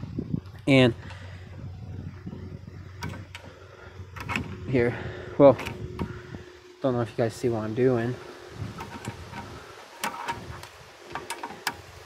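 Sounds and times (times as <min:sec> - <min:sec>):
screwdriver clicking and scraping metal: 0:08.8 - 0:11.8.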